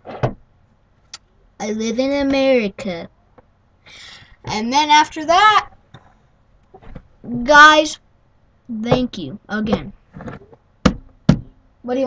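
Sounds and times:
sharp knocks: 0.0 - 0.4, 8.9 - 11.6.

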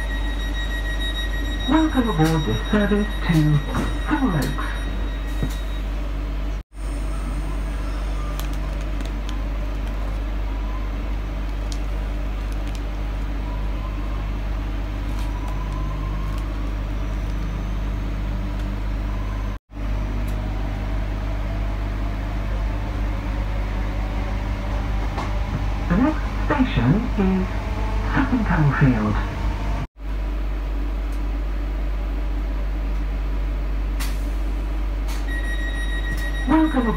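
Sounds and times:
train rumbling inside carriage: 0.0 - 29.9, 30.7 - 36.9
faint rising whine: 15.3 - 29.9.

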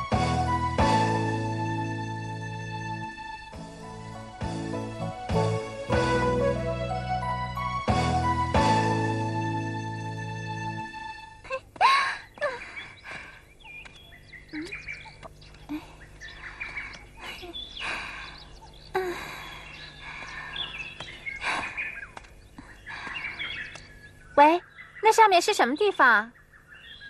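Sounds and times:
held musical chord: 0.0 - 11.4
birds chirping: 9.6 - 27.0.

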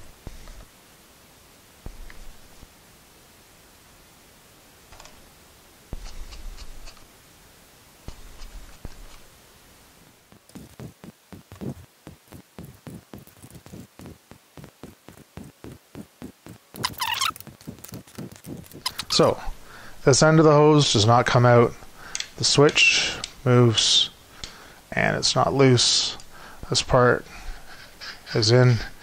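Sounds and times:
brief squeak: 16.8 - 17.4.

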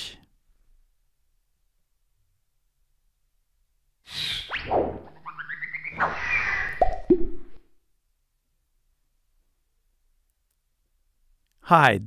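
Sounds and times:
cartoon falling swish: 4.2 - 7.6.

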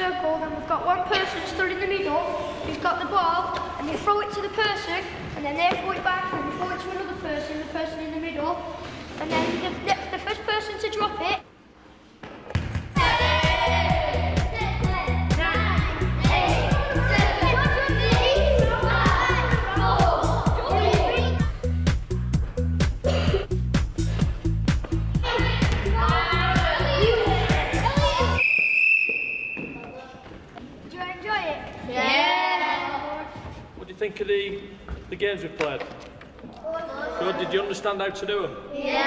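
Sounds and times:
child speaking: 0.0 - 11.5, 14.4 - 21.5, 25.2 - 28.4, 36.6 - 37.5, 38.7 - 39.0
children's voices: 13.0 - 21.6, 25.2 - 28.4, 30.8 - 33.6, 36.6 - 37.6, 38.7 - 39.0
music with a beat: 13.0 - 28.4
sports whistle blast: 28.2 - 29.9.

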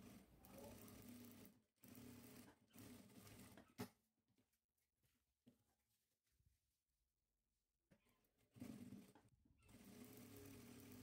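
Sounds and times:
sewing machine stitching: 0.0 - 4.0, 8.3 - 11.0.

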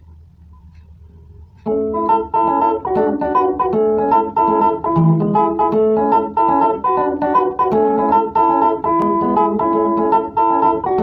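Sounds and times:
faint low hum: 0.0 - 3.9
organ-like electronic keyboard: 1.6 - 11.0.

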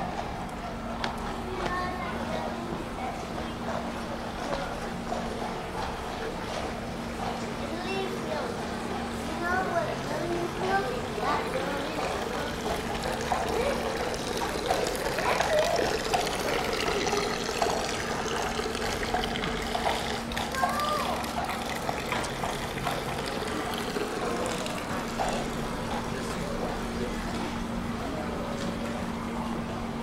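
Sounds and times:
people talking: 0.0 - 19.3, 20.4 - 30.0
water trickling into metal basin: 11.4 - 26.3.

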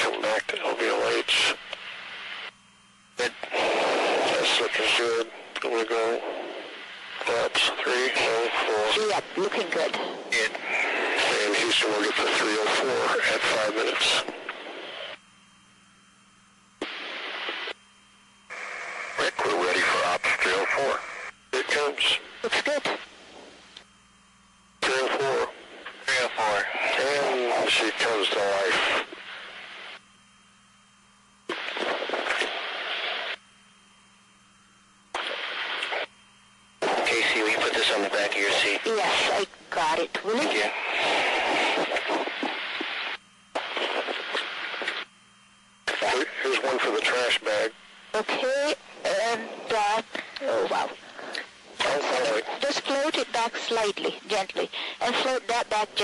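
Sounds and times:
unclear voices over radio: 0.0 - 2.5, 3.2 - 15.2, 18.5 - 23.1, 24.8 - 30.0, 36.8 - 45.1, 45.8 - 56.0
quiet hum: 0.0 - 56.0
radio hiss: 0.0 - 56.0.

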